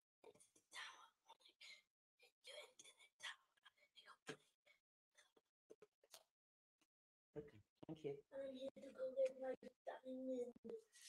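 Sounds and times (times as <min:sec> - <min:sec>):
faint whispering: 0:00.2 - 0:04.8.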